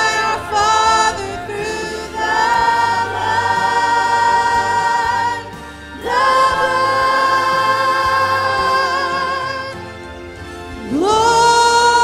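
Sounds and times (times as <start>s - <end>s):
female soloist singing: 0.0s - 9.8s, 10.9s - 12.0s
church choir singing: 0.0s - 12.0s.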